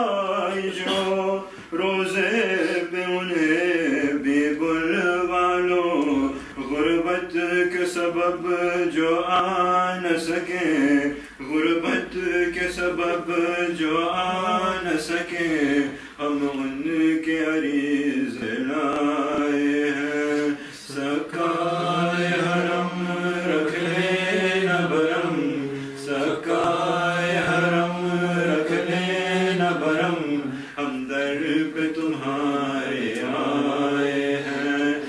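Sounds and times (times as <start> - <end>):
man chanting a lament: 0.0 - 35.0.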